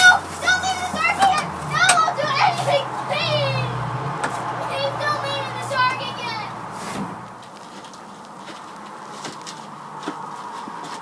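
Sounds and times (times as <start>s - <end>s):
children's voices: 0.0s - 6.7s.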